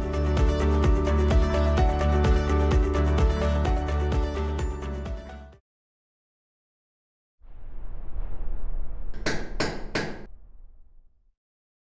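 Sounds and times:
low rumble: 7.4s - 11.3s.

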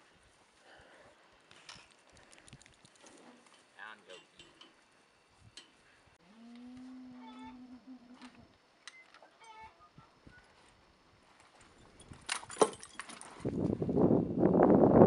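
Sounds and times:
cow mooing: 6.2s - 8.5s.

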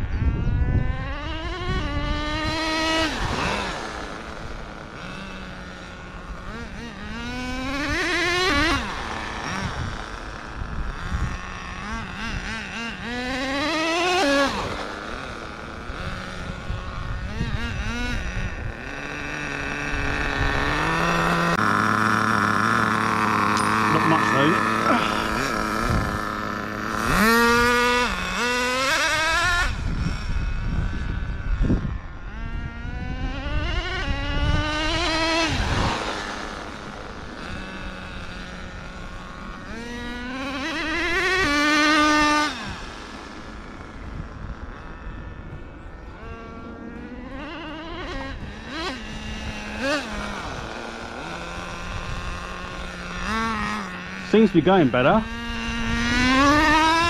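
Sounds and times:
rc car engine revving: 0.0s - 57.0s.

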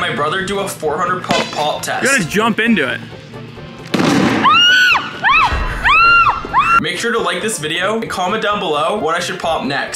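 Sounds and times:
basketball bursting with a bang: 3.9s - 4.6s.

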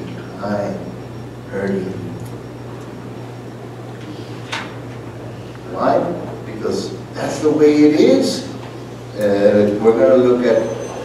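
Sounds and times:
sound system hum: 0.0s - 11.0s.

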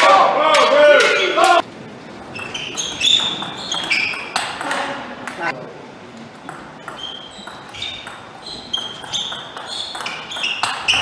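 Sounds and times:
shoes squeaking on floor: 2.2s - 4.8s, 6.8s - 11.0s
ping pong ball clicks: 6.4s - 10.9s.

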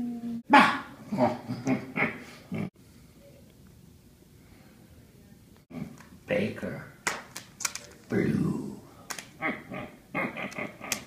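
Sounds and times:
animal vocal calls: 9.4s - 11.0s.

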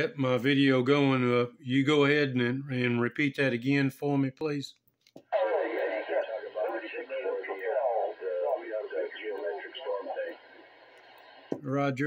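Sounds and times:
voice over radio speaker: 5.3s - 10.7s
radio hiss: 5.3s - 11.6s.

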